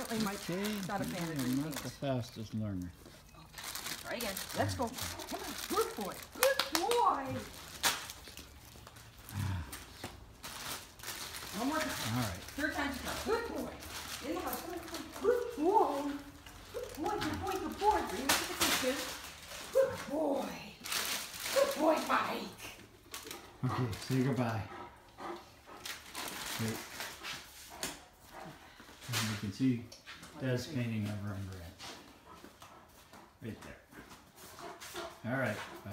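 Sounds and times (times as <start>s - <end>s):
person grunting: 9.3s - 9.9s
dog panting: 22.6s - 29.1s, 30.2s - 35.9s.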